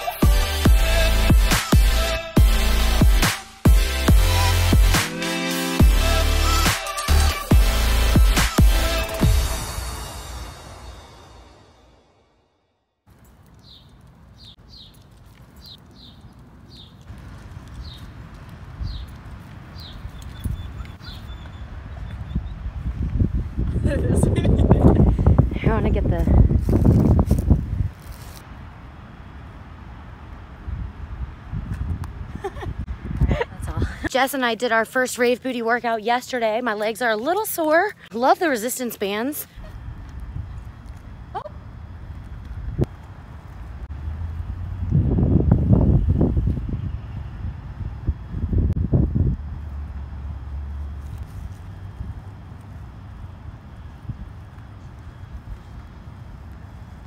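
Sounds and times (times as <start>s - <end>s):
wind rumble on microphone: 15.8s - 34.1s, 39.6s - 57.0s.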